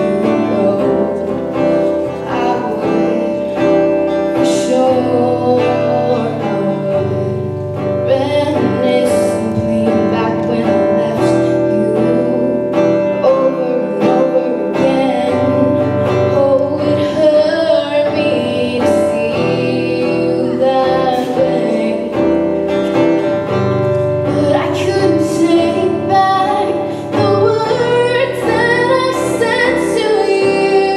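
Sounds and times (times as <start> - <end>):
acoustic guitar strumming: 0.0 - 30.9
woman singing: 0.0 - 30.9.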